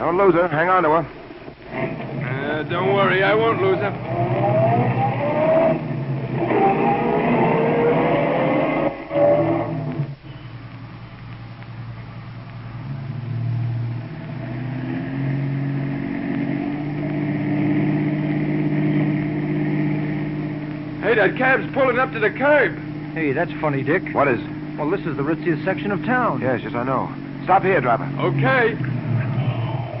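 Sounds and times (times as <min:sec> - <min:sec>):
taxi engine revving in traffic: 0:01.4 - 0:30.0.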